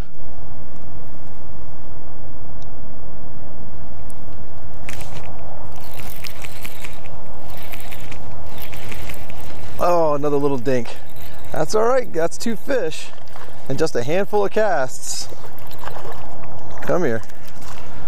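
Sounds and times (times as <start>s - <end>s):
wind buffeting microphone: 0.0s - 18.0s
fishing reel ticking: 4.9s - 17.8s.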